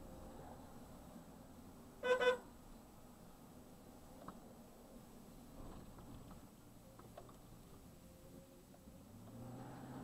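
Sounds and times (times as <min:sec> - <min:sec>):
car horn toot: 0:02.0 - 0:02.5.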